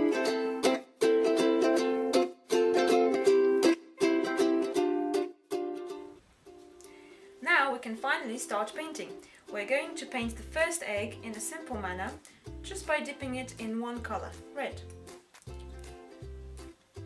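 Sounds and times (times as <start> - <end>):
ukulele plucked chords: 0.0 - 6.8, 8.0 - 17.0
woman's voice: 7.4 - 14.9.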